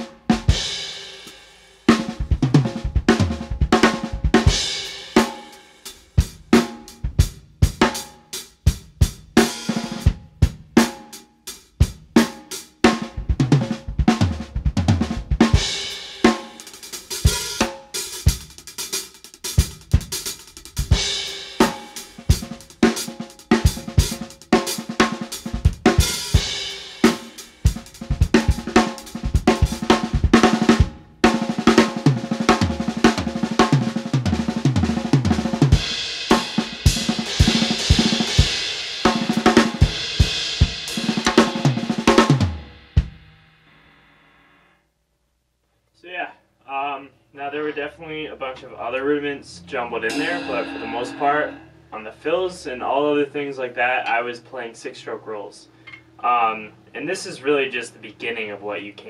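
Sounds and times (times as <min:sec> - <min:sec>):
drum kit solo: 0:00.0 - 0:44.2, 0:50.0 - 0:52.3
cymbal ringing out: 0:50.1 - 0:52.4.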